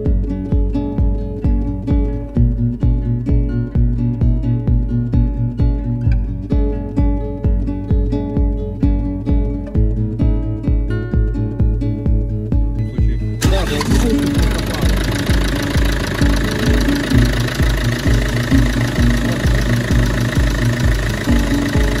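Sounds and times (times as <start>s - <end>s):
music with steady beat: 0.0s - 22.0s
diesel engine starting and running: 12.8s - 22.0s.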